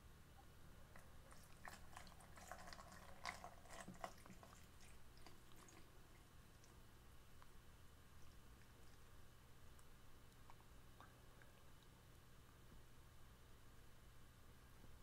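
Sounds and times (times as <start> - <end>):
water dripping: 0.4 - 6.8.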